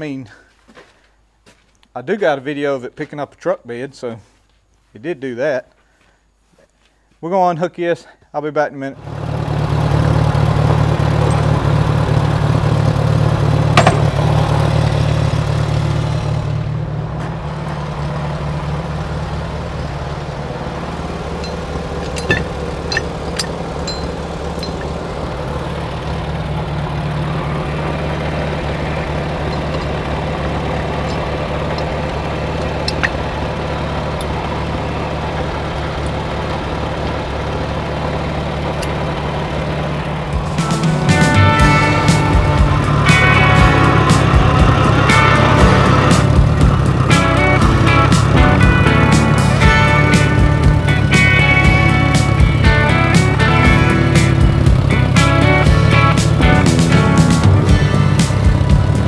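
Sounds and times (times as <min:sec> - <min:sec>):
tractor engine idling: 0:09.0 - 0:59.0.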